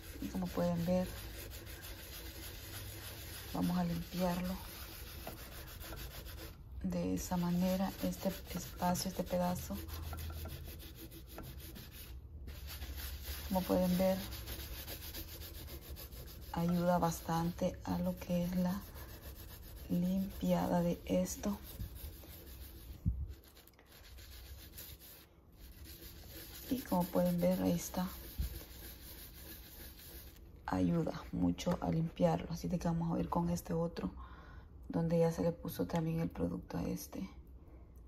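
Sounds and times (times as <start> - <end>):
sponge scrubbing on glass: 0.0 - 30.4.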